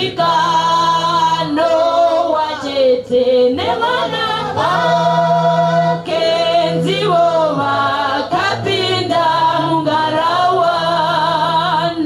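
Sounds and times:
a cappella gospel singing: 0.0 - 12.0.

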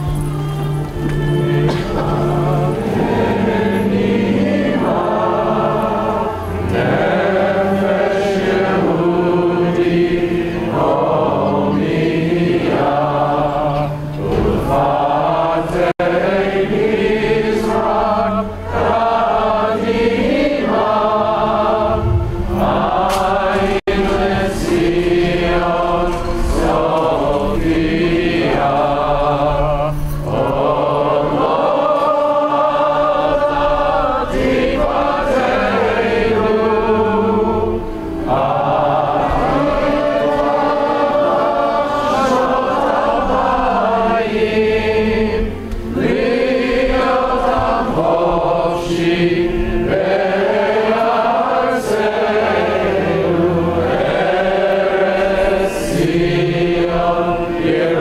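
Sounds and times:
low accompaniment: 0.0 - 58.0
voices singing slow song: 0.0 - 58.0.

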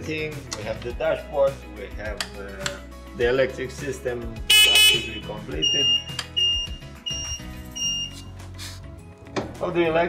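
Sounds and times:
background music: 0.0 - 10.0
high electronic beeps: 4.6 - 8.2.

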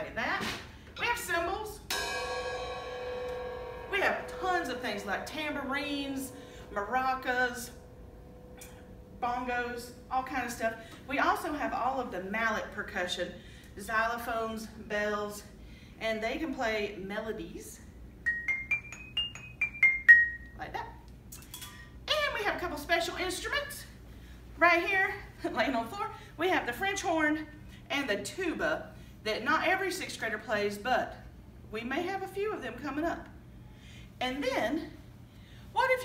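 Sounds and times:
suspended cymbal ringing: 1.8 - 12.0
mallet percussion melody: 18.3 - 20.6.

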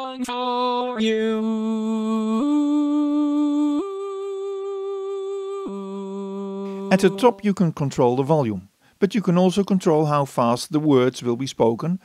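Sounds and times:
synthesized voice singing held vowel: 0.0 - 8.1.

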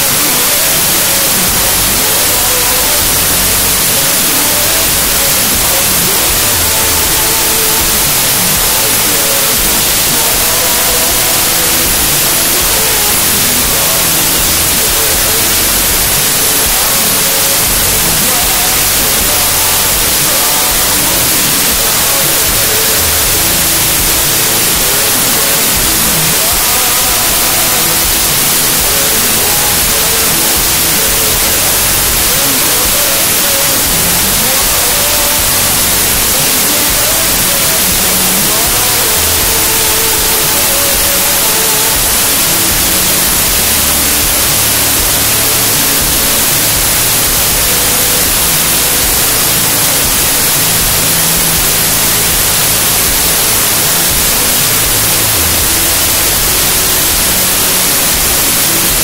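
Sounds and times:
static-like hiss: 0.0 - 59.0
worship song with singing voice: 0.0 - 59.0.

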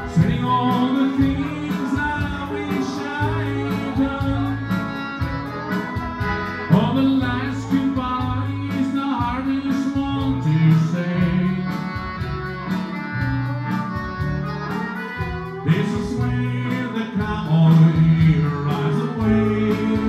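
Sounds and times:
accordion: 0.0 - 20.0
bass line: 0.0 - 20.0
steel guitar: 0.0 - 20.0.

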